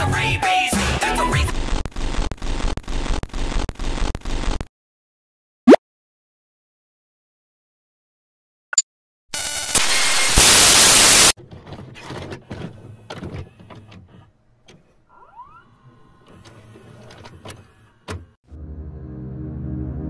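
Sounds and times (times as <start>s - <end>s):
loud hissing static: 9.4s - 11.4s
tape mechanism clicks and clunks: 11.4s - 18.4s
tape motor whir: 12.2s - 18.4s.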